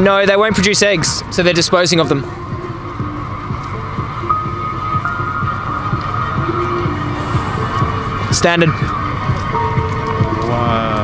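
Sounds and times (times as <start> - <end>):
dark background music: 0.0 - 11.0
low throbbing pulse: 1.0 - 11.0.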